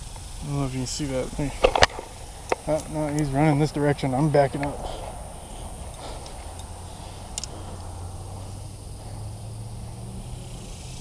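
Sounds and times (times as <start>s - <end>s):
high insect chirring: 0.0s - 11.0s
low uneven rumble: 0.0s - 11.0s.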